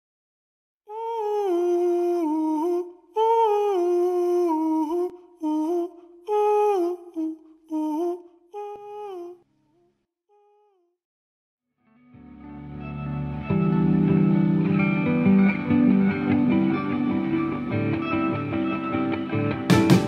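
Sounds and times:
person humming a slow melody: 0:00.9 - 0:09.5, 0:10.3 - 0:10.9.

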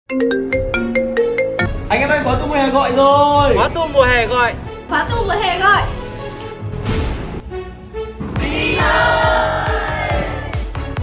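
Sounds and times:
phone ringtone melody: 0:00.1 - 0:01.7.

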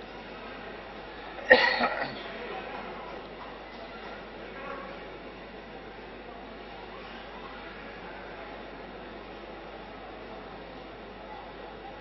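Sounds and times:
person coughing: 0:01.5 - 0:02.2.

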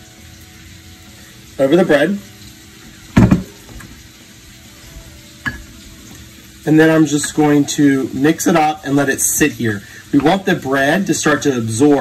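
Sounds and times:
glass bowl knocking on wood: 0:03.2 - 0:03.5.

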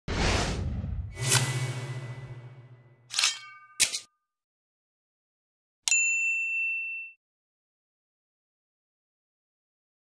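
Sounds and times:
broad whoosh: 0:00.1 - 0:02.4
sharp whoosh: 0:00.1 - 0:02.9.

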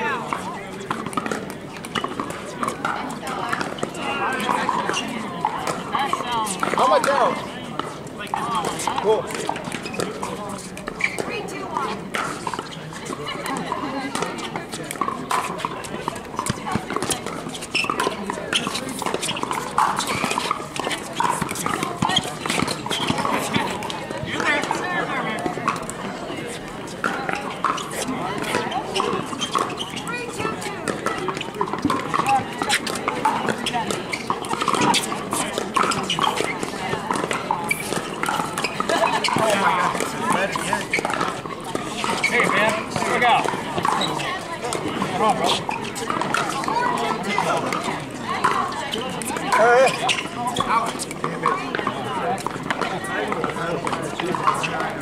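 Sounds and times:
hubbub of people talking: 0:00.0 - 0:55.0.

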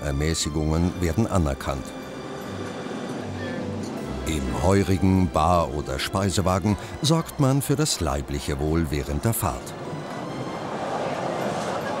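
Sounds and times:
railway carriage rumble and hiss: 0:09.7 - 0:12.0.

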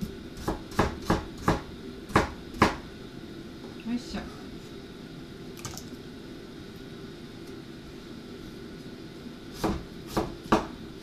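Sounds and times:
knife chopping on cutting board: 0:00.4 - 0:02.8, 0:09.5 - 0:10.8.

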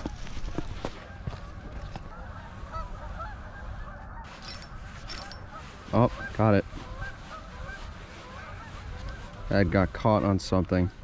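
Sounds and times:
distant wavering bird calls: 0:00.0 - 0:09.8.

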